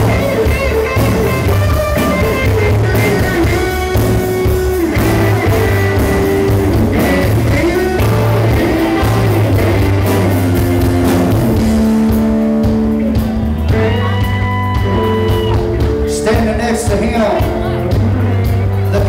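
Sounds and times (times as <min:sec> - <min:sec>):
bass guitar: 0:00.0 - 0:19.0
electric guitar lead: 0:00.0 - 0:19.0
steady drum beat: 0:00.0 - 0:19.0.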